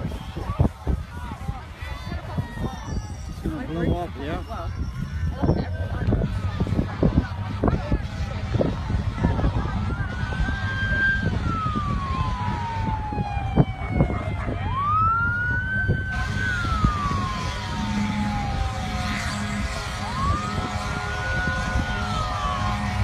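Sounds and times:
emergency vehicle siren wailing: 0:02.0 - 0:23.0
low rumble: 0:04.1 - 0:23.0.

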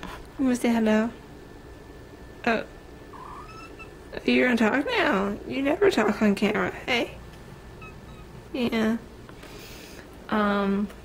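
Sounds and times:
cat meowing faintly: 0:03.1 - 0:03.9.

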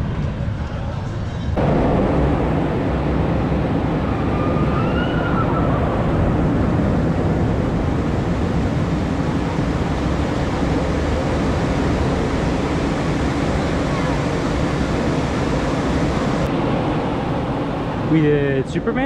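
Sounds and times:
heavy rumble: 0:00.0 - 0:19.0
steady rushing noise: 0:00.0 - 0:19.0.

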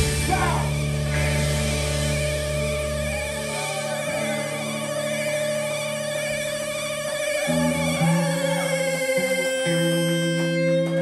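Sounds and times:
bass guitar notes: 0:00.0 - 0:11.0
electric guitar: 0:00.0 - 0:11.0.

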